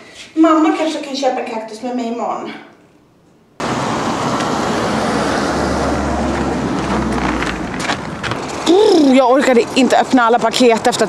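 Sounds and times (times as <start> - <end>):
vehicle rumbling by: 3.6 - 9.0
street traffic noise: 3.6 - 11.0.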